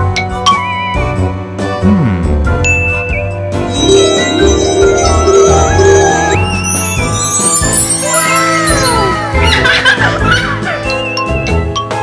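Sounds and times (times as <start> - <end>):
background music: 0.0 - 12.0
tinkling ding sound effect: 2.7 - 10.0.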